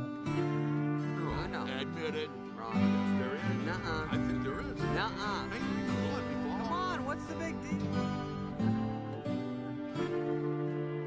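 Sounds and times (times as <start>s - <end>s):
acoustic guitar film music: 0.0s - 11.0s
man speaking: 1.2s - 8.7s.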